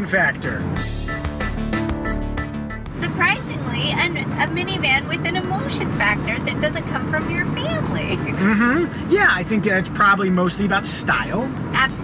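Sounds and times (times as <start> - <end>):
road noise: 0.0 - 12.0
voices talking: 3.0 - 12.0.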